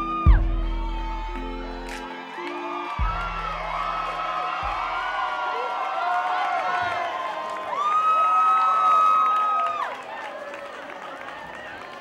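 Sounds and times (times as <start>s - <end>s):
crowd chatter: 0.0s - 8.4s, 9.6s - 12.0s
audience cheering and whooping: 0.0s - 12.0s.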